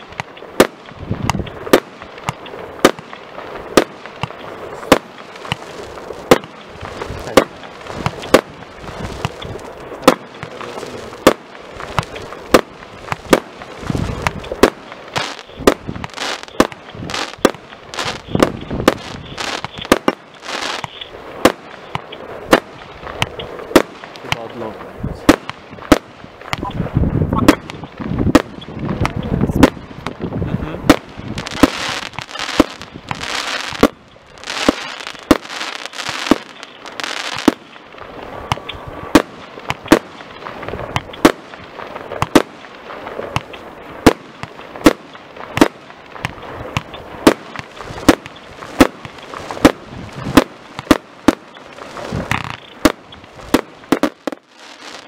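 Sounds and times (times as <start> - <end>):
firework cake bangs: 0.0 - 26.7, 27.4 - 37.8, 38.4 - 55.0
firework hissing: 0.0 - 55.0.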